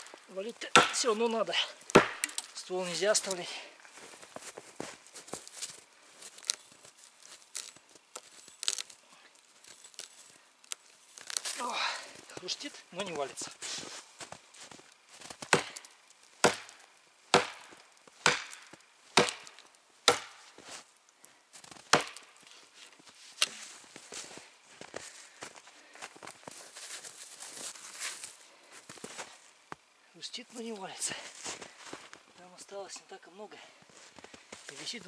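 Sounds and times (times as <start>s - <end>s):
axe chopping into tree trunk: 0.7s - 1.1s, 1.9s - 2.5s, 15.4s - 20.6s, 21.9s - 22.3s
tree trunk cracking: 5.4s - 12.4s, 14.9s - 20.6s.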